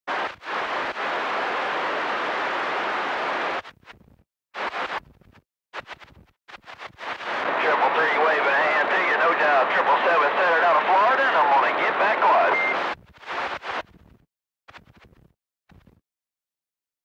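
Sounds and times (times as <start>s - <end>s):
radio static: 0.1s - 3.8s, 4.6s - 5.1s, 5.8s - 14.0s.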